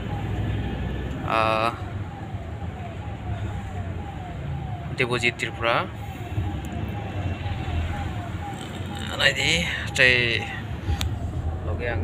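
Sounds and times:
car engine and road rumble: 0.0 - 12.0
falling electronic siren-like tone: 0.0 - 12.0.

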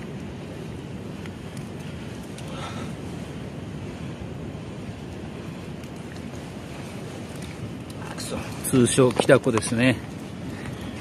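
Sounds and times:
faint water hiss: 0.0 - 11.0
wind buffeting microphone: 0.0 - 11.0.

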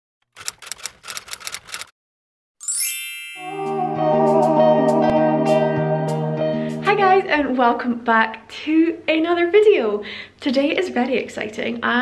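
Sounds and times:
typewriter keys clacking: 0.3 - 1.9.

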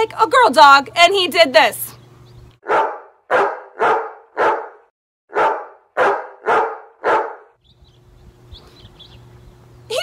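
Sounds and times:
dog barking: 2.6 - 7.5.

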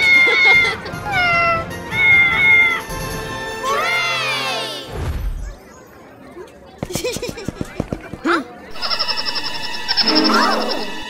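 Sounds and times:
background music: 10.0 - 11.0.

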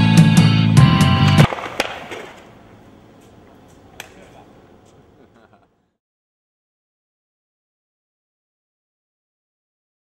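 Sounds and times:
music with steady beat: 0.0 - 1.5
skateboard clacking on concrete: 1.3 - 2.5, 3.2 - 4.3.

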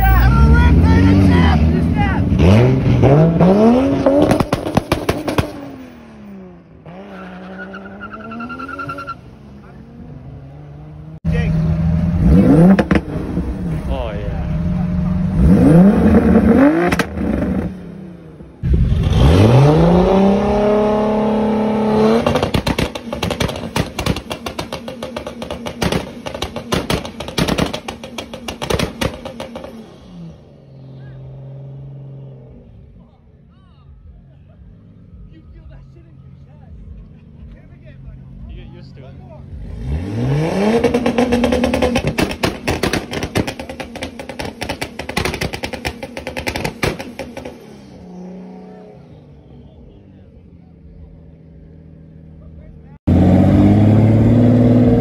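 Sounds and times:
car engines revving: 0.0 - 55.0
crackling exhaust pops and bangs: 4.1 - 5.6, 22.2 - 29.8, 40.8 - 47.7.

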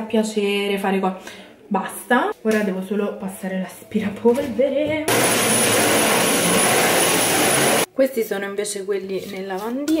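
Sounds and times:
vacuum cleaner running: 5.1 - 7.9.

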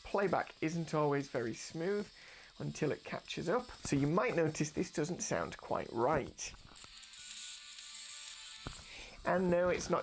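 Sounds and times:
tinny music from laptop speakers: 0.1 - 10.0.

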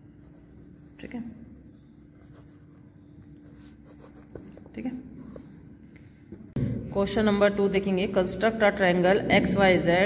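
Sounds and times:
pencil scratching on paper: 0.2 - 4.6.

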